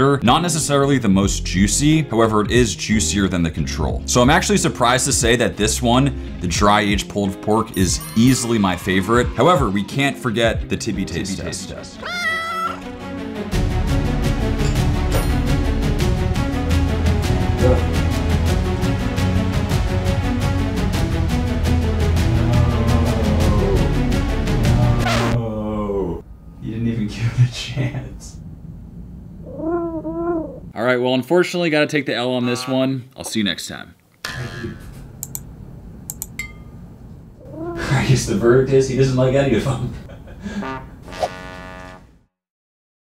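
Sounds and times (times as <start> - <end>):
cat meowing: 12.0 - 12.9, 29.4 - 30.7, 37.4 - 37.9.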